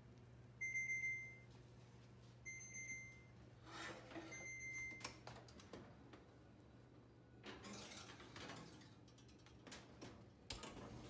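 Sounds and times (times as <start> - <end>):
oven beeper beeping: 0.6 - 1.5, 2.4 - 3.5, 4.2 - 5.2.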